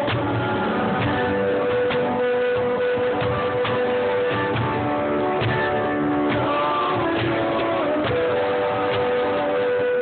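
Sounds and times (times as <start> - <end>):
acoustic guitar: 0.0 - 10.0
person singing a long note: 6.3 - 10.0.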